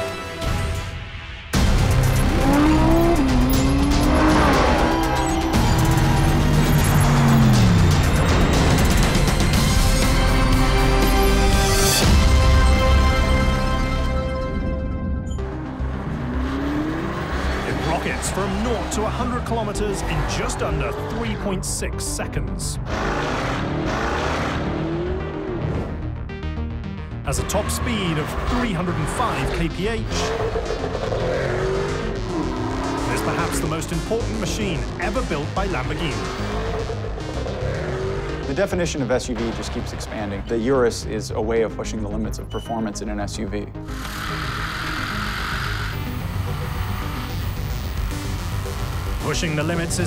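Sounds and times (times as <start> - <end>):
background music: 0.0 - 50.0
car engine revving: 1.6 - 14.0, 15.4 - 41.0, 43.8 - 50.0.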